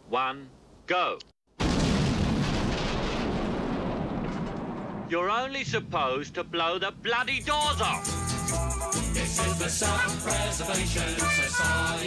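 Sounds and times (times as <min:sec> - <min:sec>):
large explosion rumbling: 0:01.6 - 0:07.1.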